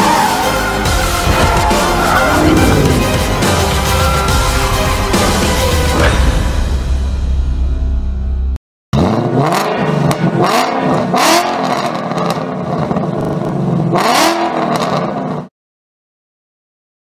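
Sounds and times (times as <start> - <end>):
car engine revving: 1.0 - 6.0, 9.0 - 15.4.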